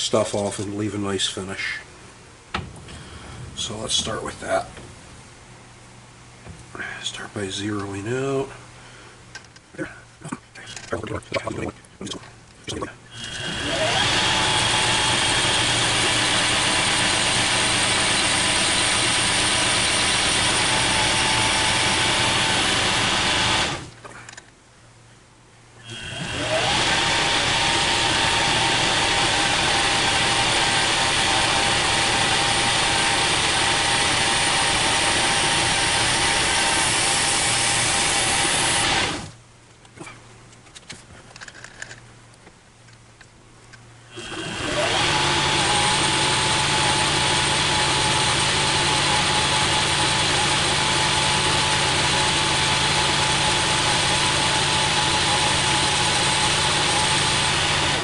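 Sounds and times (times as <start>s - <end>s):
metal lathe running: 13.2s - 23.9s, 25.9s - 39.3s, 44.2s - 58.0s.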